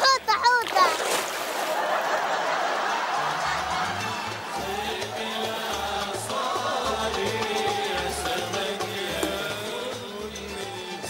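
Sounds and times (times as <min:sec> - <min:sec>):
child speaking: 0:00.0 - 0:01.1
sea water splashing: 0:00.0 - 0:10.1.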